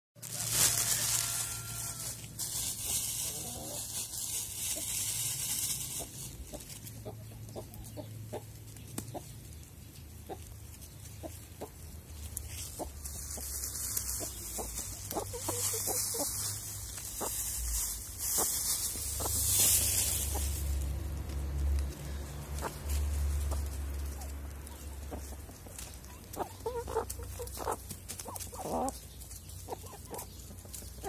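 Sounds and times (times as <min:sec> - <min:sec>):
hens clucking: 0:00.2 - 0:31.0.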